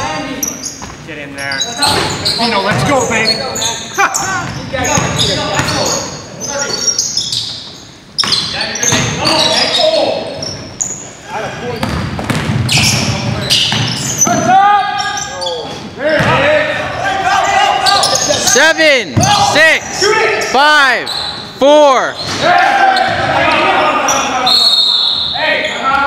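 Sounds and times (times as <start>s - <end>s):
basketball bouncing on hardwood: 11.8s - 12.7s
players shouting: 13.4s - 26.0s.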